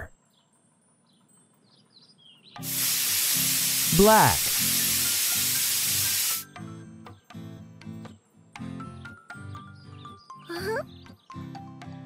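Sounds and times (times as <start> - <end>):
background music: 2.5 - 12.0
paint sprayer hiss: 2.6 - 6.5.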